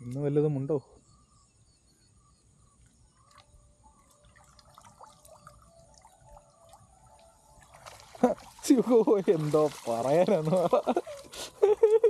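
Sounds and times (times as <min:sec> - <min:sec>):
water dripping and trickling: 0:02.8 - 0:12.0.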